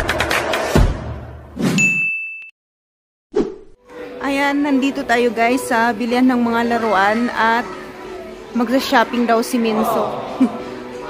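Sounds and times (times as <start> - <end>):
high bell-like ding: 1.8 - 2.5.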